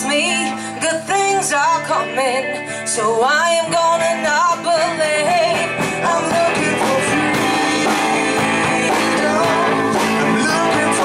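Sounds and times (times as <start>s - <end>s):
live rock band: 0.0s - 11.0s
people singing: 4.8s - 11.0s.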